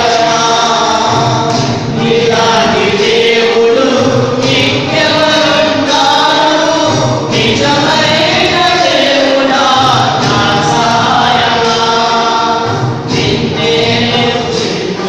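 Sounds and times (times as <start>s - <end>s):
voices singing a hymn: 0.0s - 15.0s.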